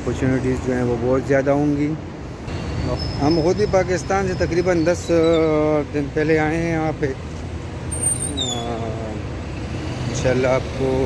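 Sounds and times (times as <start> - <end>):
passing vehicles rumbling: 0.0 - 11.0.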